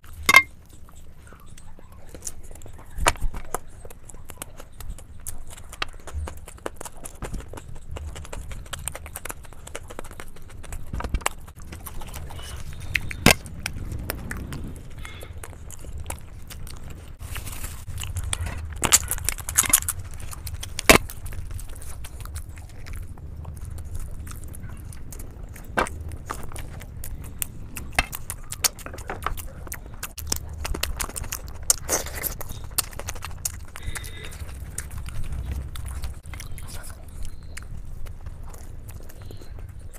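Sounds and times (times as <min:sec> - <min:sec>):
crunchy chewing: 0:00.0 - 0:39.9
mouth clicks: 0:00.1 - 0:17.2, 0:17.8 - 0:39.9.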